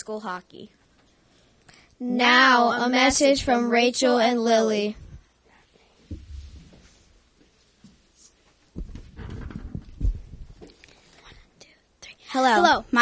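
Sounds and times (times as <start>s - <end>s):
microphone handling thumps and rustling: 4.9s - 11.2s.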